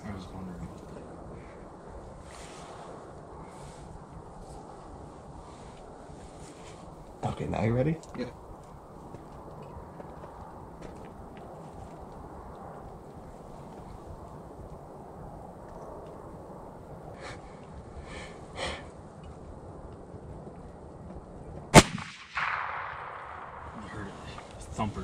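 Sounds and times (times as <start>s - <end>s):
low outdoor background noise: 0.0s - 25.0s
soft sniffs: 2.3s - 3.9s.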